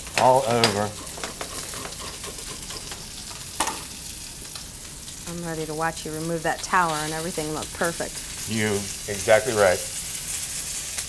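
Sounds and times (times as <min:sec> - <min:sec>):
shrimp sizzling in a pan: 0:00.0 - 0:11.0.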